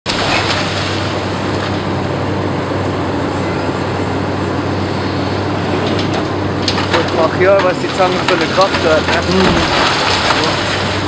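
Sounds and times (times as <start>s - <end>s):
excavator engine hum: 0.1s - 11.0s.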